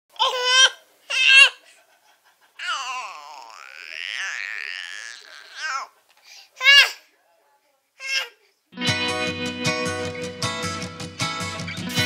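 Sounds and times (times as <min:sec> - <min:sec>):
baby squealing: 0:02.6 - 0:05.9.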